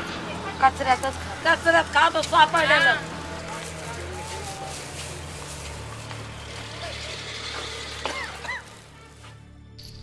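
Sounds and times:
vehicle engine running: 0.0 - 9.2
outdoor noise: 0.0 - 10.0.

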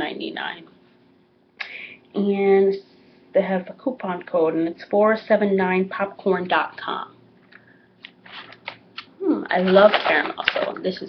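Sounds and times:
snack bag crinkling: 8.1 - 10.7.

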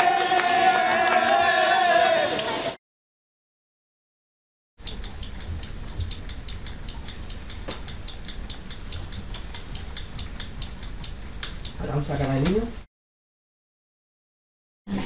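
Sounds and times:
rain pattering on a window: 4.8 - 12.8.

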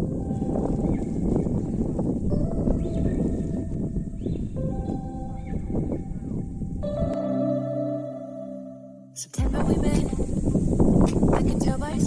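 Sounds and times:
gusty wind on microphone: 0.0 - 7.1, 9.4 - 12.0.

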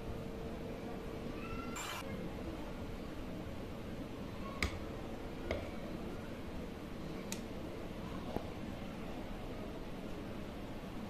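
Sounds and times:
spoon squeaking in batter: 1.8 - 2.0.

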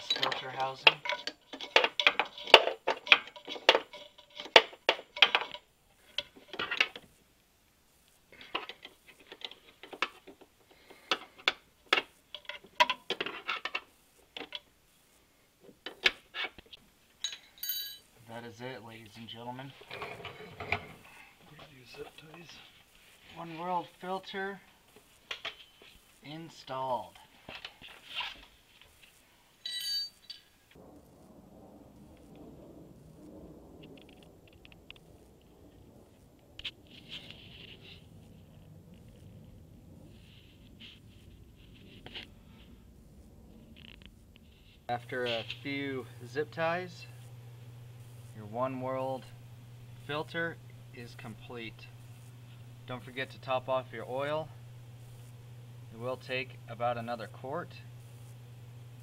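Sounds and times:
metallic clicks and clinks: 0.0 - 7.0, 17.2 - 18.1, 29.6 - 30.5
bright ringing clink: 17.2 - 18.1, 29.6 - 30.5.

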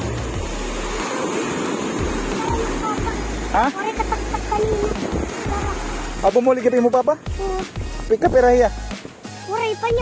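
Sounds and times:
ocean surf breaking on beach: 0.0 - 8.3.

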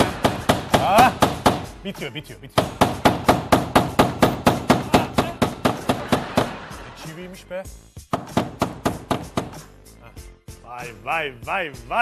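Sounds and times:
hammer driving a nail: 0.0 - 1.7, 2.6 - 6.7, 8.1 - 9.7.

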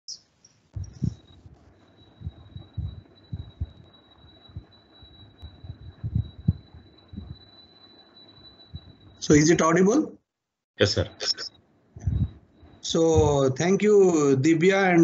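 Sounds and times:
faint high-pitched whine: 0.1 - 10.2, 10.8 - 15.0
low thumps and knocks: 0.8 - 4.7, 5.4 - 7.4, 12.0 - 13.4.

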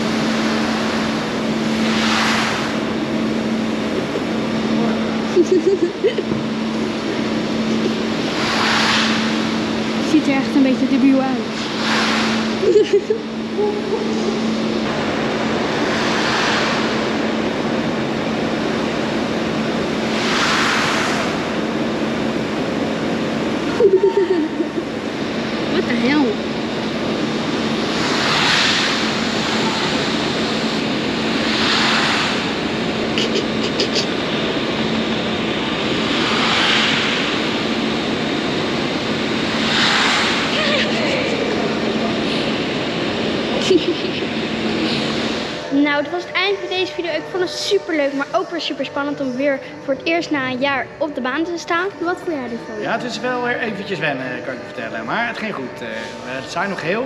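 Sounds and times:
ski slope carpet machine running: 0.0 - 57.0.

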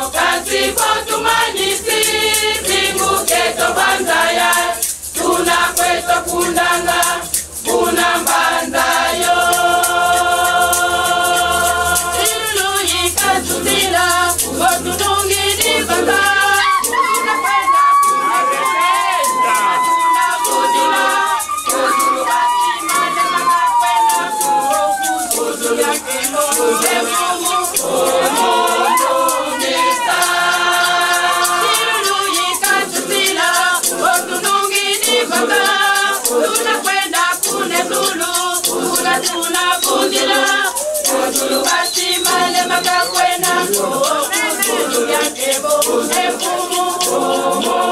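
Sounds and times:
hand shakers beat: 0.0 - 47.9
women's choir singing: 0.0 - 47.9.

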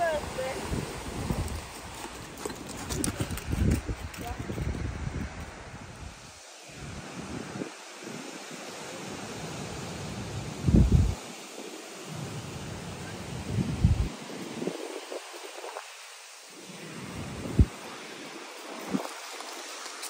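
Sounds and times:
wind buffeting microphone: 0.0 - 16.0, 16.6 - 19.6.

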